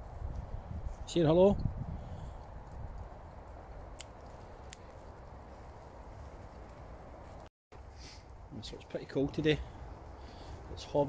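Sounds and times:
twigs snapping underfoot: 3.8 - 5.2.

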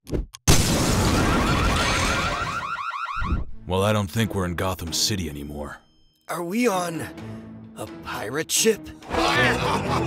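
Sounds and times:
cartoon explosion burst: 0.5 - 2.7.

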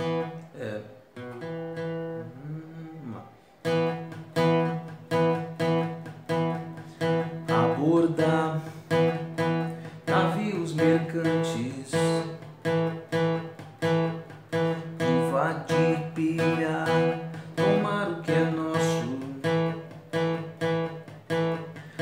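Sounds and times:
acoustic guitar strumming power chords: 0.0 - 22.0.

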